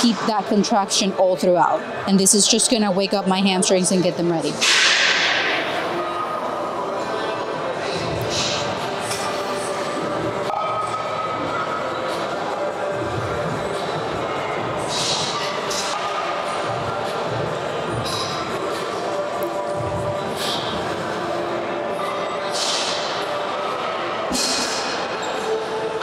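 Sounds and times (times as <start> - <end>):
indistinct voices in gym hall: 0.0 - 26.0.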